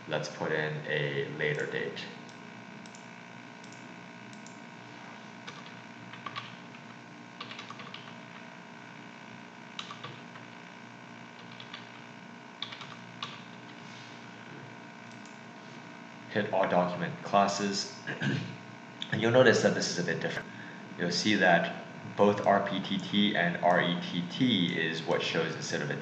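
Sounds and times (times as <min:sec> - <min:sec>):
faint background hum: 0:00.0 - 0:26.0
keyboard keys clicking: 0:05.5 - 0:06.8, 0:07.4 - 0:08.2, 0:09.8 - 0:10.3, 0:11.4 - 0:11.9, 0:12.6 - 0:13.5.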